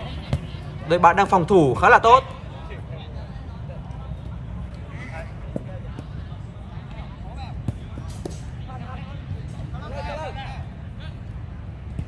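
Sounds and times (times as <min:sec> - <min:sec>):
players distant shouts: 0:00.0 - 0:11.4.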